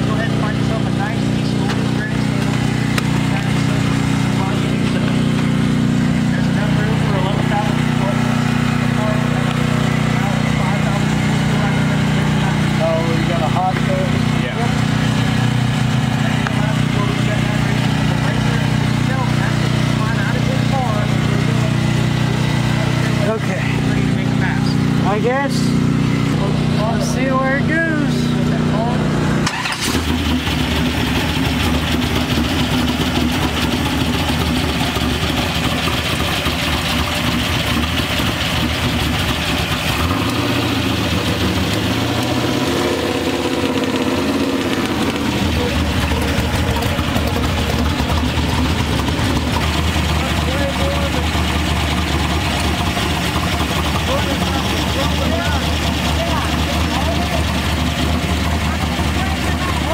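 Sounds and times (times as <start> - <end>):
truck engine idling: 0.0 - 59.9.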